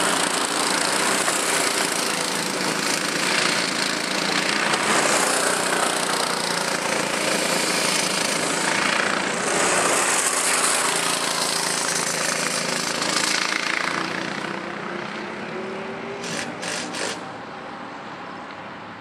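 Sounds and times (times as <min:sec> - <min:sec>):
go-kart engines passing: 0:00.0 - 0:19.0.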